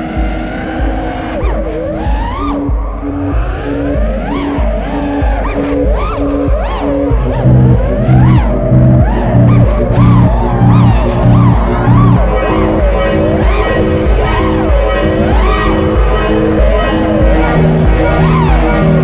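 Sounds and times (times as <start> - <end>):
drone motors whining: 0.0 - 19.0
electronic music with steady beat: 0.0 - 19.0.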